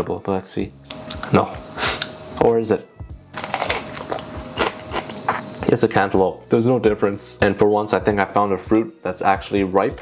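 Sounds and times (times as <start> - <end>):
crisp wet chewing crunches: 3.4 - 5.2.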